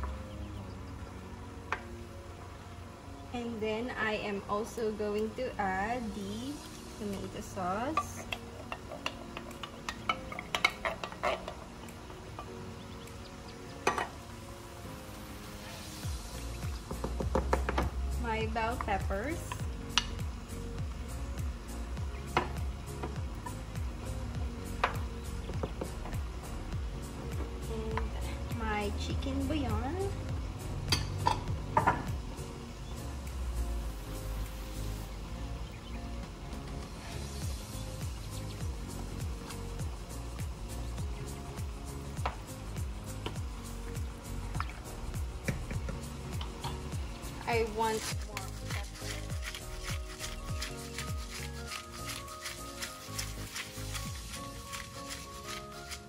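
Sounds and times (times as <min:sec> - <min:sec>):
upbeat background music: 0:00.0 - 0:56.0
wooden spoon stirring in a pan: 0:47.8 - 0:56.0.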